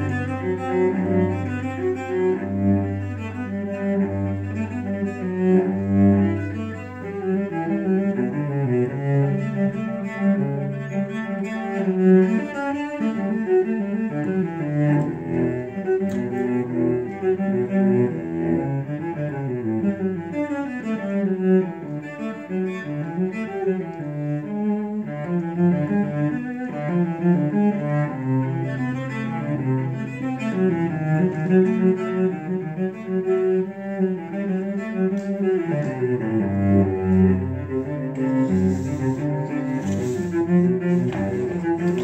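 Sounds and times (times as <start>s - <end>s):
bowed cello: 0.0s - 42.0s.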